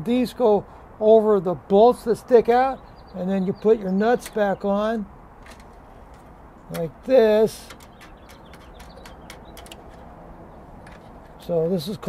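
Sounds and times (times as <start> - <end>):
metallic clicks of nuts threading: 5.4 - 10.2.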